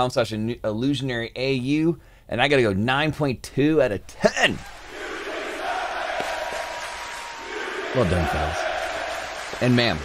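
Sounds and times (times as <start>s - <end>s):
crowd cheering and shouting: 4.4s - 10.0s.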